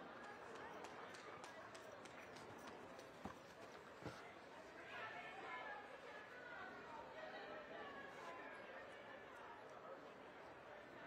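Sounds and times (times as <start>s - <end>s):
light footsteps on artificial turf: 3.0s - 4.3s.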